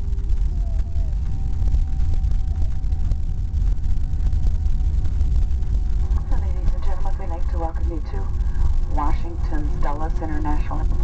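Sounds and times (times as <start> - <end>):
aircraft cabin rumble: 0.0 - 11.0
faint steady tones: 0.0 - 11.0
announcement voice over pa: 6.0 - 11.0.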